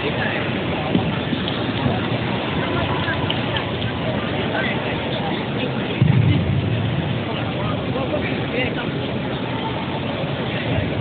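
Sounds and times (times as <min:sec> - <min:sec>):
faint chatter of onlookers: 0:00.0 - 0:11.0
low rumble of sports hall: 0:00.0 - 0:11.0.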